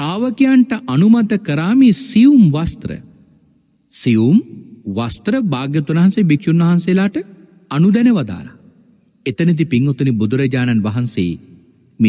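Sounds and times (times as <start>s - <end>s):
man preaching: 0.0s - 3.1s, 3.9s - 8.5s.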